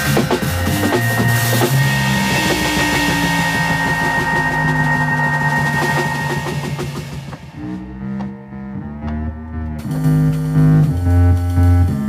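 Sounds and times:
drums: 0:00.0 - 0:08.4, 0:09.8 - 0:12.0
bass: 0:00.0 - 0:12.0
keyboards: 0:00.0 - 0:12.0.

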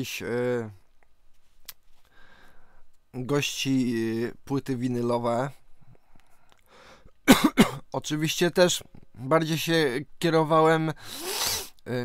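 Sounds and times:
man coughing: 0:07.2 - 0:07.9.

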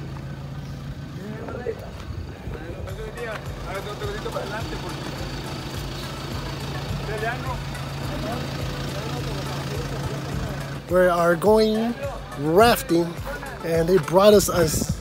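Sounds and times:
diesel engine idling: 0:00.0 - 0:14.4
faint voices: 0:00.0 - 0:15.0.

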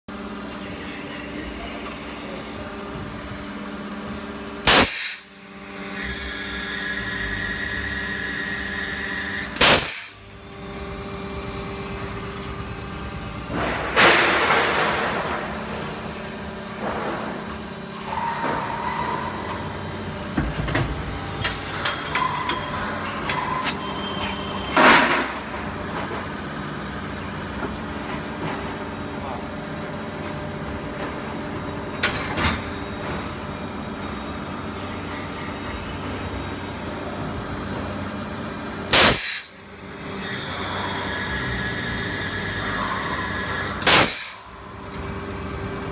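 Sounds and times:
machine hum: 0:00.1 - 0:45.9
loud sharp machine clunks: 0:04.6 - 0:05.3, 0:09.5 - 0:10.2, 0:13.3 - 0:26.1, 0:38.9 - 0:39.6, 0:42.7 - 0:44.5
burst of machine noise: 0:42.7 - 0:44.5.

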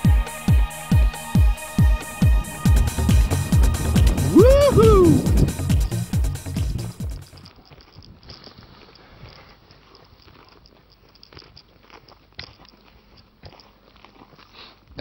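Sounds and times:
wind noise on microphone: 0:01.4 - 0:08.3.

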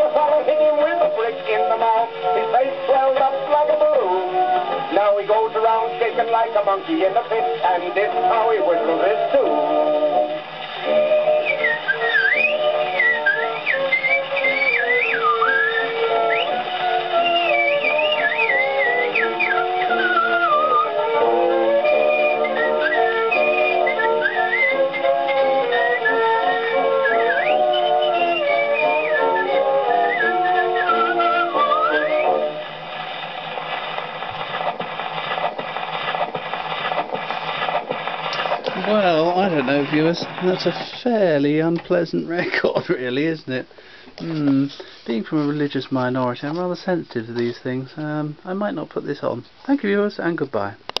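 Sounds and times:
instrumental accompaniment: 0:00.0 - 0:45.7
man whistling old recording: 0:10.9 - 0:32.6
record surface noise clicks: 0:32.6 - 0:41.1, 0:50.4 - 0:51.0.

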